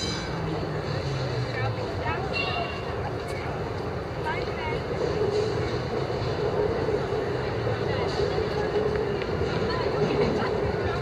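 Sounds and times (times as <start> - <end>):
urban background rumble: 0.0 - 11.0.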